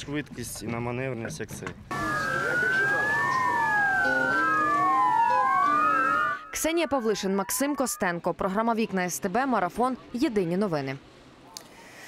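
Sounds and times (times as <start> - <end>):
short steady siren tones: 1.9 - 8.1
sirens wailing: 1.9 - 8.3.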